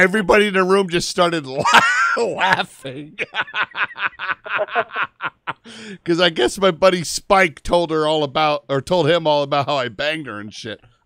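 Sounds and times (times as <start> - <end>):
man chuckling: 1.6 - 6.0.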